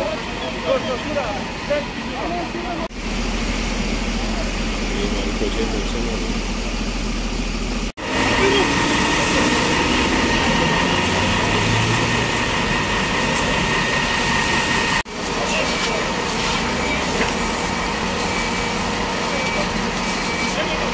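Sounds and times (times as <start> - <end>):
people talking: 0.0 - 2.9, 4.0 - 6.4, 8.2 - 13.6, 15.2 - 17.5, 19.2 - 20.9
diesel engines idling: 0.0 - 20.9
road traffic: 0.0 - 20.9
steady high tone: 8.0 - 17.1.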